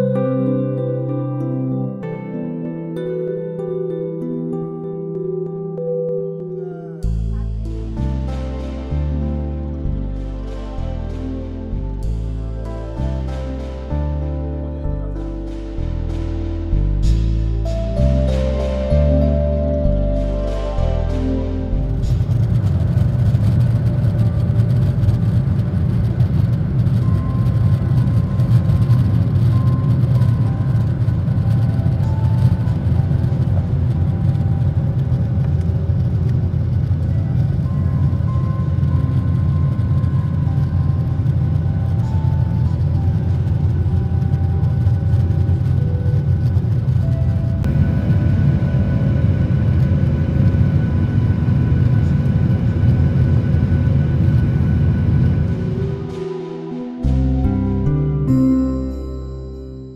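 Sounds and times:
music playing: 0.0 - 59.9
jet engine roar in cabin: 21.0 - 57.6.

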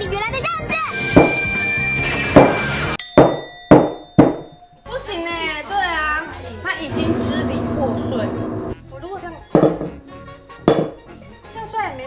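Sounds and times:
knocks on ceramic piggy bank: 1.2 - 1.5, 3.2 - 4.6, 9.6 - 10.0, 10.7 - 11.0.

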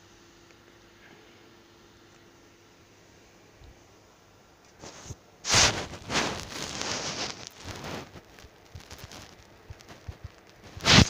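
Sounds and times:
crumpled foil paper rustling: 4.8 - 11.0.

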